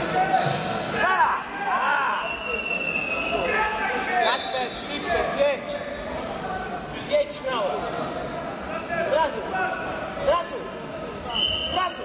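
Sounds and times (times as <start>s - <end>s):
people calling out in echoing hall: 0.0s - 6.1s.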